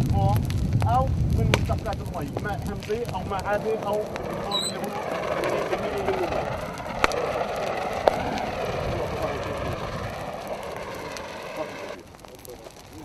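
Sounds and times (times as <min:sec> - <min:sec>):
fire hose spraying hiss: 0:00.0 - 0:13.0.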